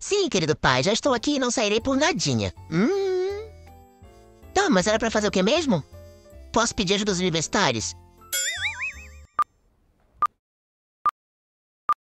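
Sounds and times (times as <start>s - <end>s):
cartoon boing sound effect: 8.3s - 9.4s.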